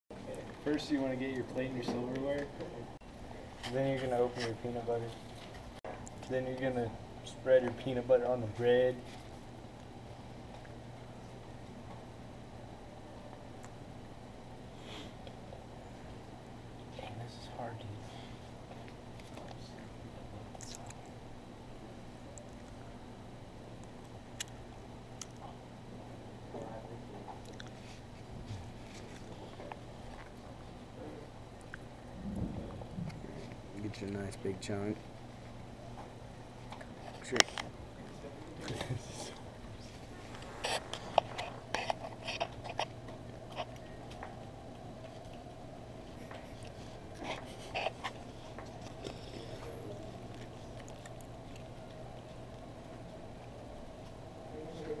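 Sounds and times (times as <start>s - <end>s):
low electrical hum: 0.1s - 55.0s.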